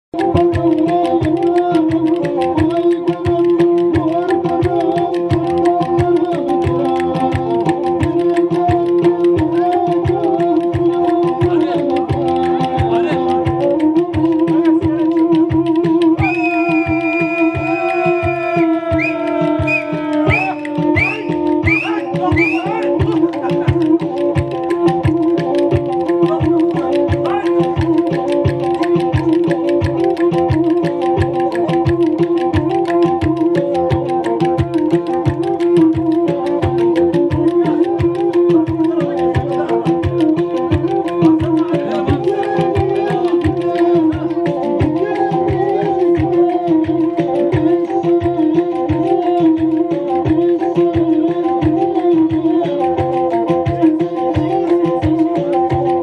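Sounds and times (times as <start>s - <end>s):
bowed string melody: 0.2s - 56.0s
clicking beat with low thumps: 0.2s - 56.0s
quick sharp clacks: 0.2s - 56.0s.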